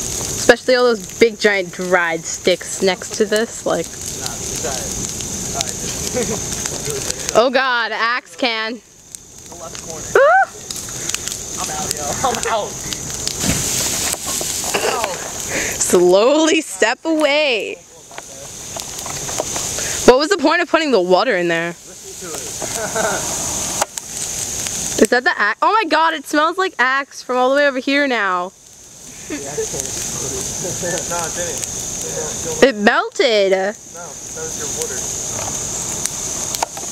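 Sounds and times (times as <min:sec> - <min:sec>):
bonfire crackling and popping: 0:00.0 - 0:36.9
fire hissing: 0:00.0 - 0:36.9
indistinct voices: 0:00.4 - 0:23.8.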